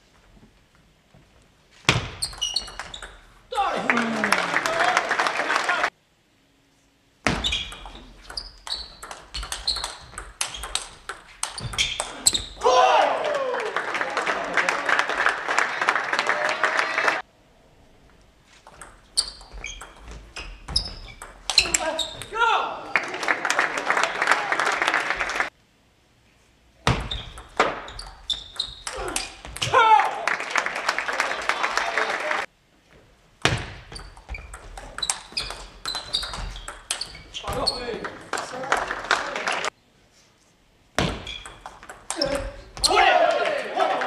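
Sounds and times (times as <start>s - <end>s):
spectator applause: 3.5s - 6.0s, 12.6s - 17.3s, 22.7s - 25.5s, 29.8s - 32.5s, 37.8s - 39.7s, 43.0s - 44.0s.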